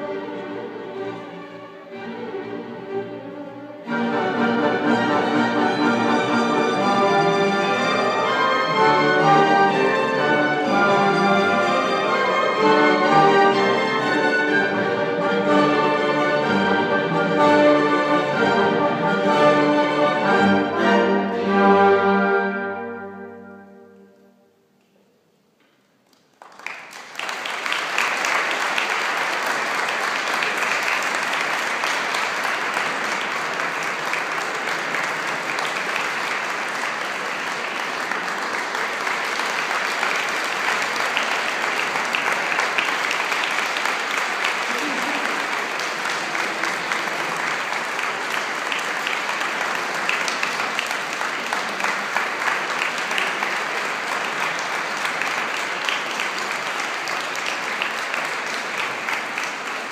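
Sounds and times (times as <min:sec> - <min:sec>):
audience applauding: 0:03.9 - 0:16.7, 0:26.0 - 0:59.9.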